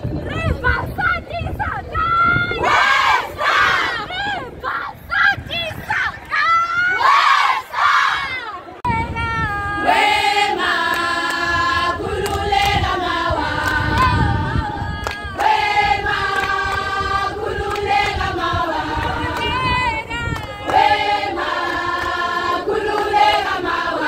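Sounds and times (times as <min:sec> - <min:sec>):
women shouting and cheering: 0:00.2 - 0:10.2, 0:19.1 - 0:21.1
women singing in harmony: 0:09.4 - 0:24.0.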